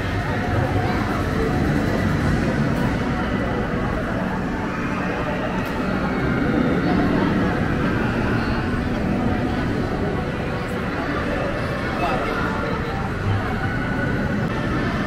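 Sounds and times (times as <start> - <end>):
steady low rumble: 0.0 - 11.9
indistinct crowd voices: 0.0 - 15.0.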